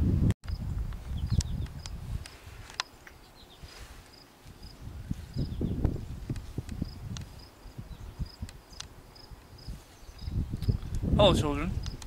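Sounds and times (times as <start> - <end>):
sharp clicks: 1.2 - 3.2, 11.8 - 12.0
crickets chirping: 2.8 - 11.0.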